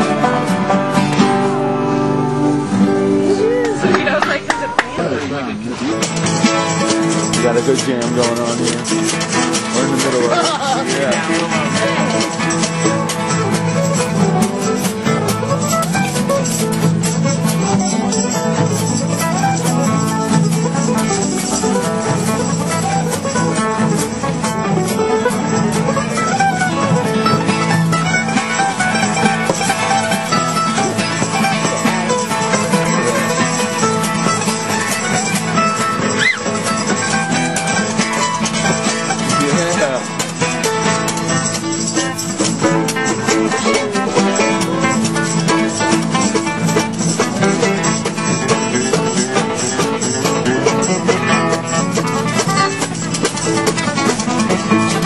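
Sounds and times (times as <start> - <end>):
acoustic guitars strumming: 0.0 - 55.0
mandolin: 0.0 - 55.0.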